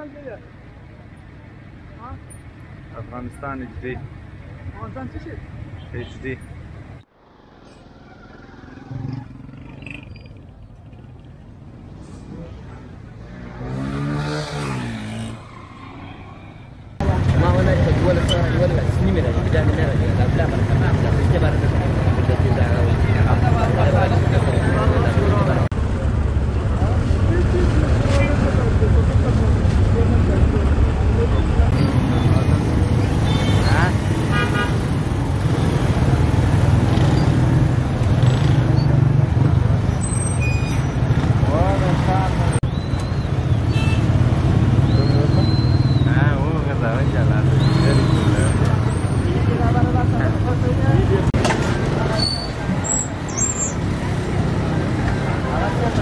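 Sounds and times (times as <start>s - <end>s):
passing motor traffic rumble: 0.0s - 56.0s
horn toots: 33.1s - 35.8s.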